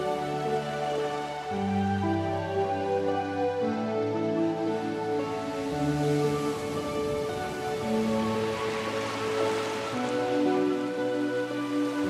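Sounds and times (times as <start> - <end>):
rain-like hiss: 0.0 - 12.0
slow music with held notes: 0.0 - 12.0.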